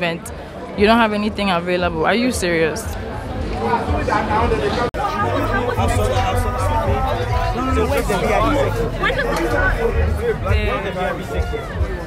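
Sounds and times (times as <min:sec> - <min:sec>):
people talking over one another: 0:00.0 - 0:12.0
loud music with heavy bass: 0:00.8 - 0:12.0.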